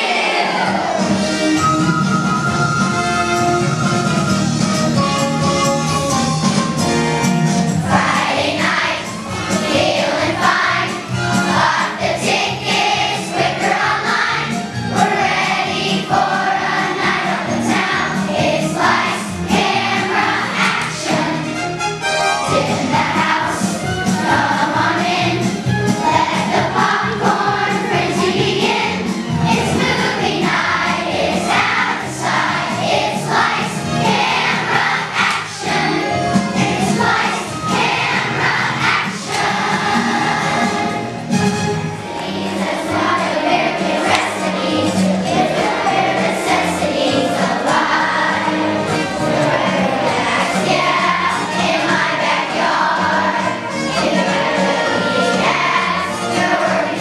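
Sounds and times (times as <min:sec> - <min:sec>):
children's choir singing: 0:00.0 - 0:05.4, 0:06.1 - 0:57.0
instrumental accompaniment: 0:00.1 - 0:57.0.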